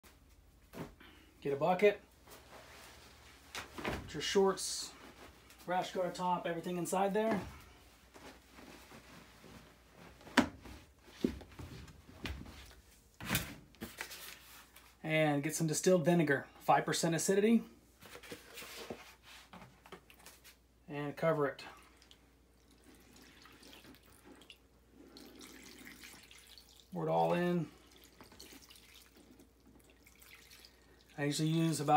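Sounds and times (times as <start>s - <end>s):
fabric rustling: 2.1s - 4.3s, 7.3s - 13.0s
liquid trickling and splashing: 21.8s - 27.0s, 27.6s - 31.2s.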